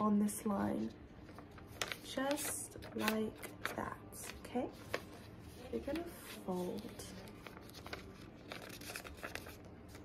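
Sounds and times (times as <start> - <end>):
paper rustling and crinkling: 1.2 - 10.0.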